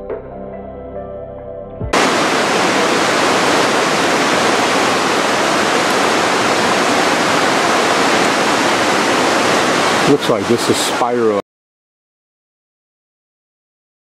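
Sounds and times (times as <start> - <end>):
fast-flowing river water: 2.0 - 11.4.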